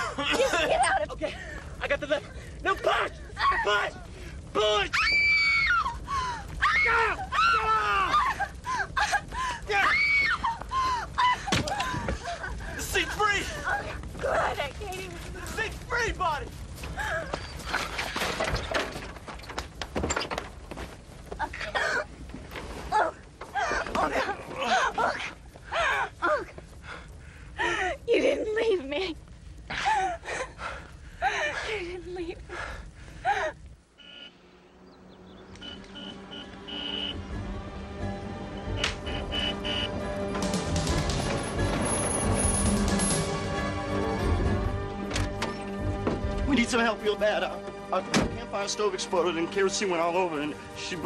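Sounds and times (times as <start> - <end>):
scuffling with clicks and knocks: 11.4 - 25.6
soft orchestral music: 34.4 - 51.0.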